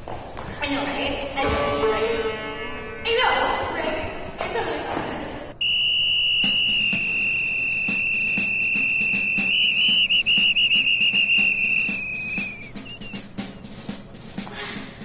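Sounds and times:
sports whistle blast: 0:05.6 - 0:13.3.

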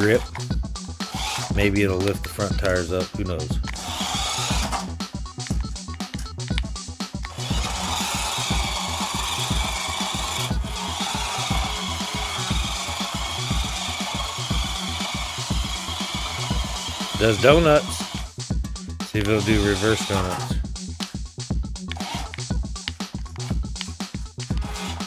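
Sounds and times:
electric motor and gears whine: 0:00.0 - 0:01.7, 0:03.6 - 0:05.0, 0:07.2 - 0:18.4, 0:19.2 - 0:20.6, 0:22.0 - 0:22.5, 0:24.4 - 0:25.0
background music with beat: 0:00.0 - 0:25.0
toy truck clicks and rattles: 0:07.2 - 0:18.3.

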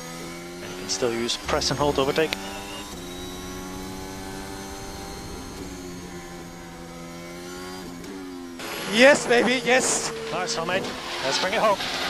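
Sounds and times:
racing car engine running: 0:00.0 - 0:12.0.

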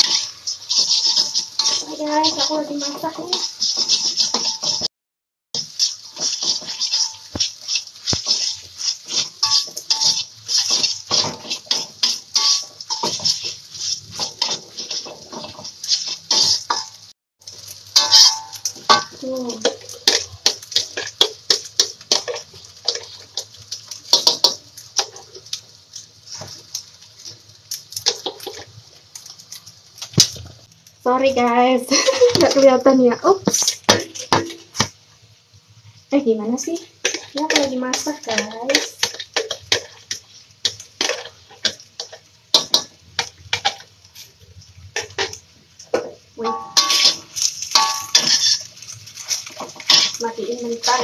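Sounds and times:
dishes and utensils clattering: 0:00.0 - 0:04.9, 0:06.2 - 0:17.0, 0:45.0 - 0:50.3.

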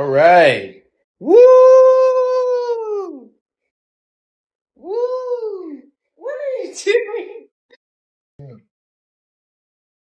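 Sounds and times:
man cheering woooo: 0:01.2 - 0:03.3.

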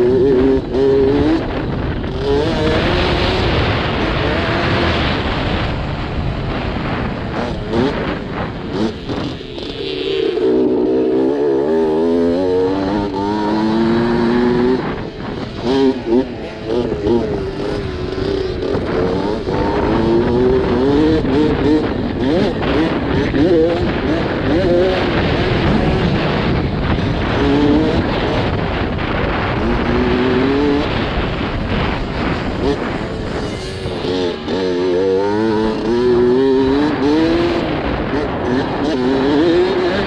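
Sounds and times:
dirt bike engine racing: 0:00.0 - 0:40.0
wind buffeting microphone: 0:00.0 - 0:40.0.

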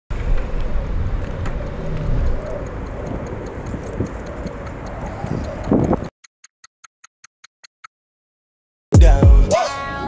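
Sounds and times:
fast steady ticking: 0:00.3 - 0:06.1.

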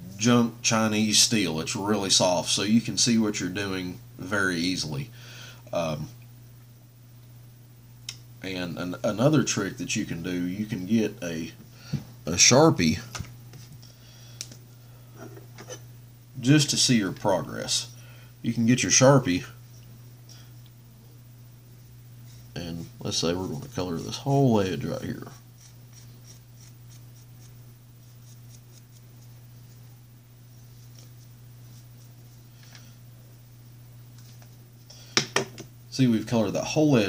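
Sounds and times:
low steady hum: 0:00.0 - 0:37.0
marker rubbing on steel: 0:25.2 - 0:29.4
soft handling sounds: 0:34.1 - 0:35.4.

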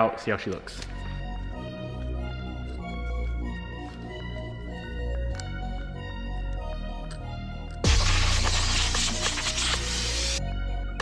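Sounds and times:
background music: 0:00.0 - 0:11.0
spray gun air hiss: 0:07.8 - 0:10.4.

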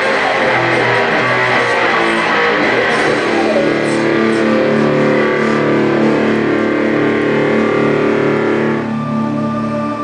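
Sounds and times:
distorted electric guitar riff: 0:00.0 - 0:10.0.

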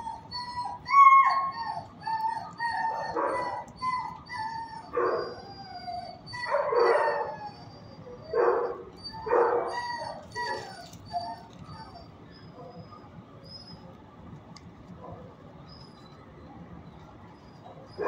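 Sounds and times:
dogs whining: 0:00.0 - 0:14.1, 0:15.0 - 0:16.5, 0:17.3 - 0:18.0
dog barking: 0:08.4 - 0:09.8.

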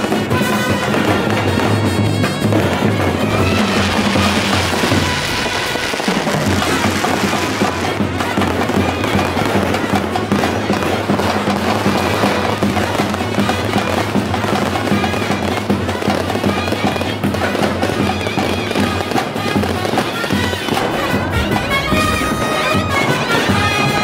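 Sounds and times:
music playing: 0:00.0 - 0:14.1, 0:18.5 - 0:24.0
fireworks crackling and bursting: 0:00.0 - 0:24.0.

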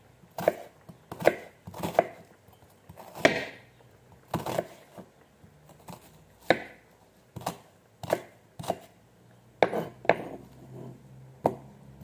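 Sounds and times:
knife slicing onion: 0:00.3 - 0:02.3, 0:04.3 - 0:05.0, 0:07.4 - 0:08.9.

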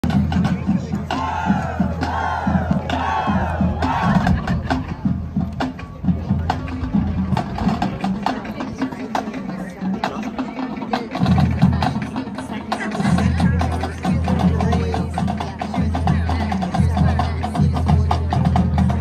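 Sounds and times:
stadium crowd noise: 0:00.0 - 0:19.0
crowd shouts or chants: 0:01.0 - 0:04.6.

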